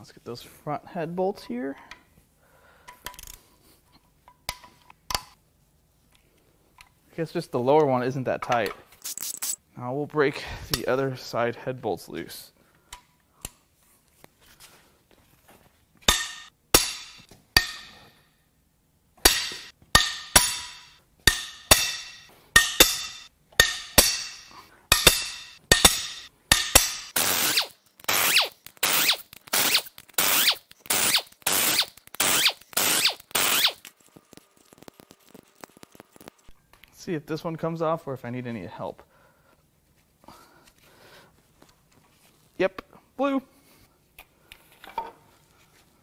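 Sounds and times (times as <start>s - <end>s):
breaker bar metallic cracks and clicks: 19.2s - 36.5s.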